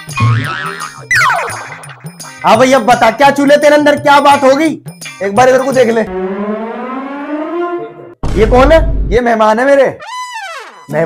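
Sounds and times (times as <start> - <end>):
rising siren-like tone: 6.1 - 8.2.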